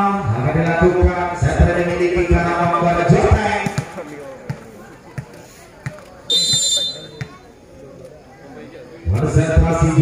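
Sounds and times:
faint voices: 0:00.0 - 0:10.0
ball bouncing thuds: 0:02.4 - 0:07.4
referee's whistle: 0:06.3 - 0:07.4.

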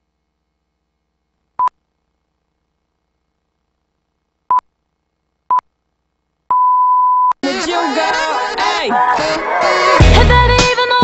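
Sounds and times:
song with singing: 0:07.4 - 0:11.0.

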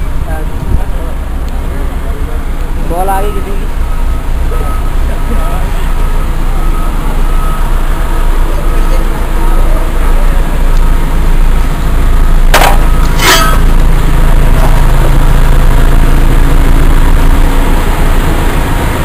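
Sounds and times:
tunnelling machinery rumbling: 0:00.0 - 0:19.0.

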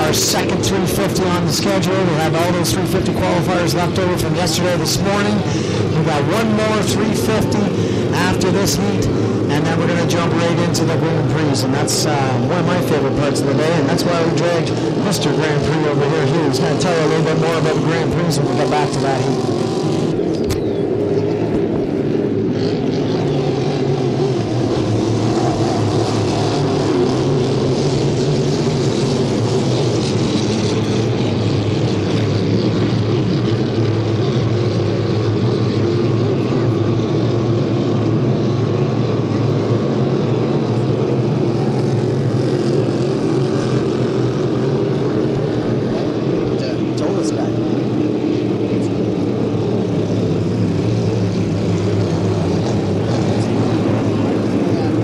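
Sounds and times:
racing boat engines droning: 0:00.0 - 0:55.0.

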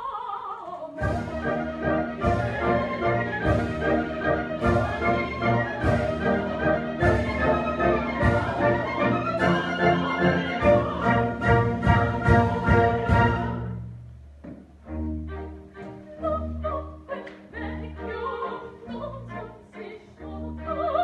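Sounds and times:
orchestra playing: 0:01.0 - 0:20.9.

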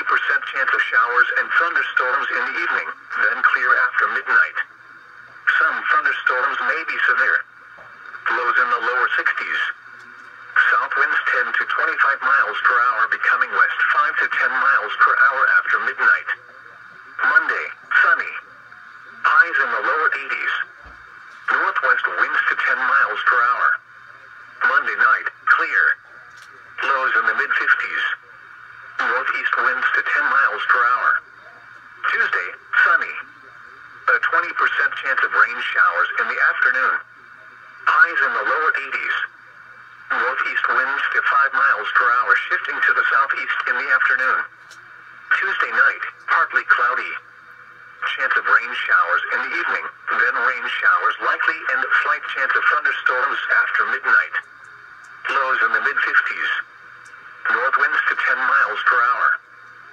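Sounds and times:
radio voice over loudspeaker: 0:00.0 - 0:59.9.

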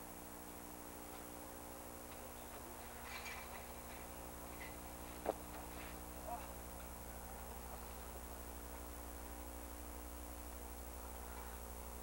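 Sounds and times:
electrical hum: 0:00.0 - 0:12.0
faint voices: 0:06.2 - 0:08.1.

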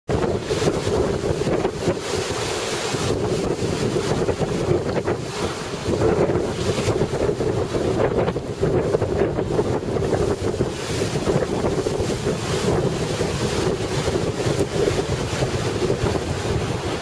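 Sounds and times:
wind buffeting microphone: 0:00.1 - 0:17.0.

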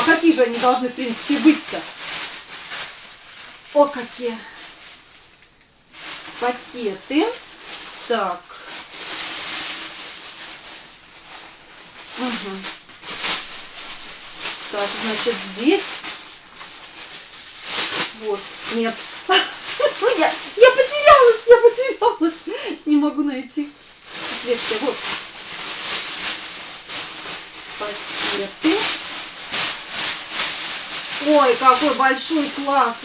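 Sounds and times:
plastic bag rustling and crinkling: 0:00.0 - 0:33.0.

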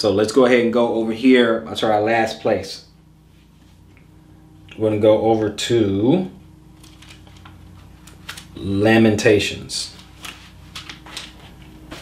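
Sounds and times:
low room hum: 0:00.0 - 0:12.0
pages rustling: 0:06.8 - 0:08.6, 0:09.9 - 0:12.0.

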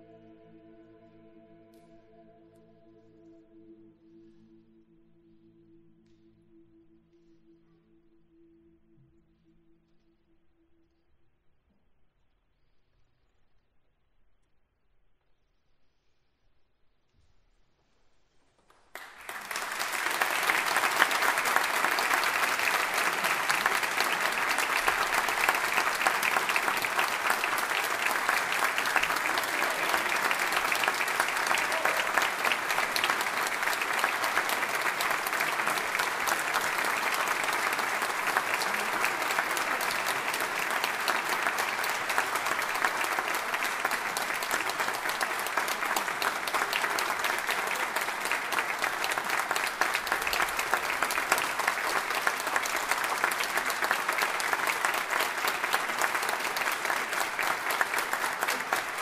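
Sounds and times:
audience applauding: 0:18.8 - 0:59.0.

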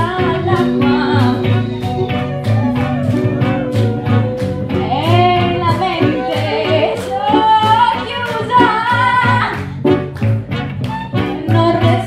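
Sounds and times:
woman singing into a microphone: 0:00.0 - 0:02.3, 0:04.4 - 0:09.6, 0:11.3 - 0:12.0
live band with electric guitar: 0:00.0 - 0:12.0.

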